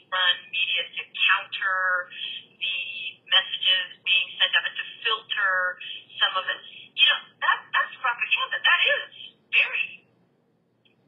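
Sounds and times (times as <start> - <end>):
voice over telephone line: 0.0 - 10.0.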